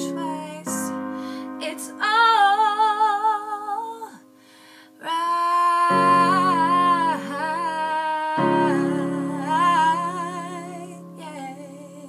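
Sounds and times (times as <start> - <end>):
woman singing with vibrato: 0.0 - 4.3, 5.0 - 12.0.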